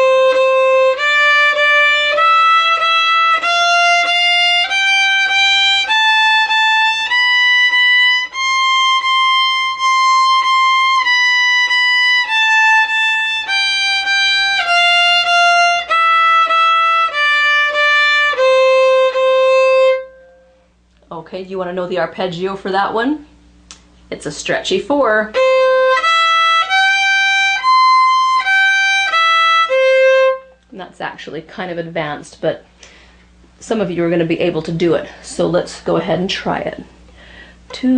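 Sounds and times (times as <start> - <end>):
fiddle playing a scale: 0.0 - 20.7, 25.2 - 30.6.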